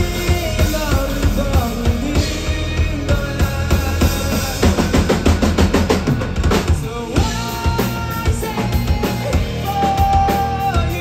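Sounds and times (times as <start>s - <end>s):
fast drum fill: 0.0s - 11.0s
live rock band playing: 0.0s - 11.0s.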